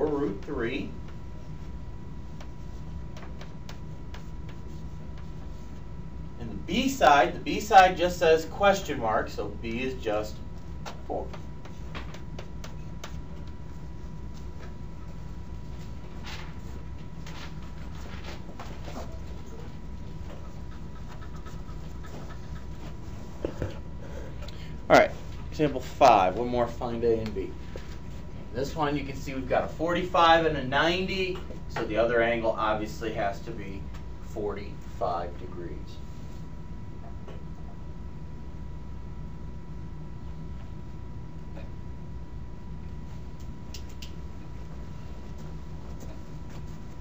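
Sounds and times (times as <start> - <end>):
low hum and hiss: 0.0 - 47.0.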